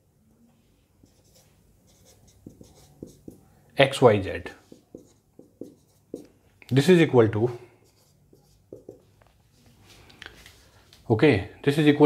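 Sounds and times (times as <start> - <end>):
marker writing on whiteboard: 1.0 - 3.7, 4.5 - 6.4, 7.4 - 9.3.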